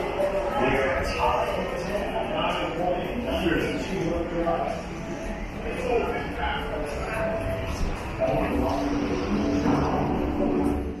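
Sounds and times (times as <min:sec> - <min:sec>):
background music with held tones: 0:00.0 - 0:11.0
indistinct crowd noise: 0:00.0 - 0:11.0.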